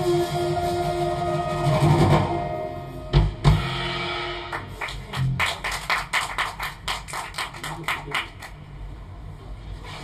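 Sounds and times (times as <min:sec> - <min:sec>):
people clapping: 0:04.5 - 0:08.7.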